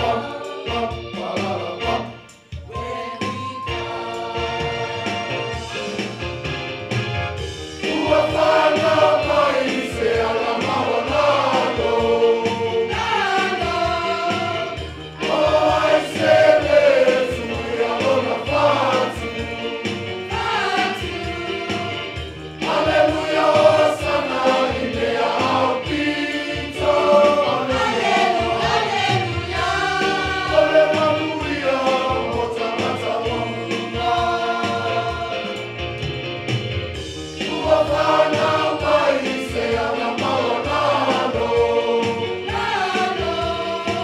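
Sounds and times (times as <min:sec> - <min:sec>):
choir singing a hymn: 0:00.0 - 0:36.1, 0:37.0 - 0:44.0.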